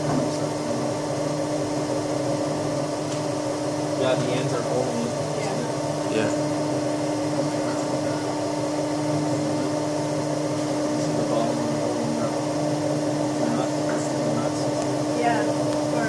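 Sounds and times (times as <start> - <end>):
testing machine drive humming: 0.0 - 16.0.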